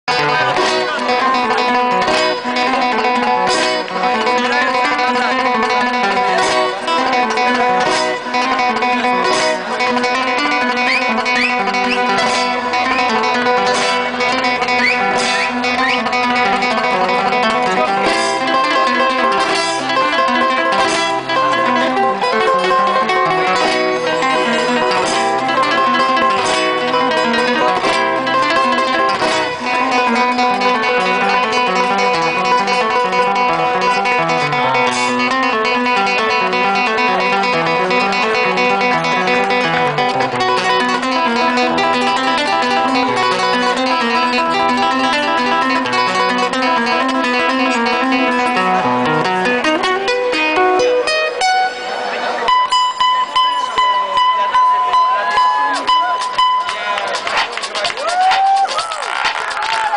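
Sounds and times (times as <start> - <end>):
plucked acoustic guitar: 0.0 - 59.9.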